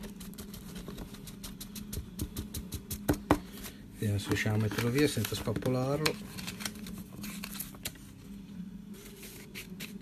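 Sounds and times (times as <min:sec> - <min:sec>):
paper handling crackles: 0:03.6 - 0:08.3.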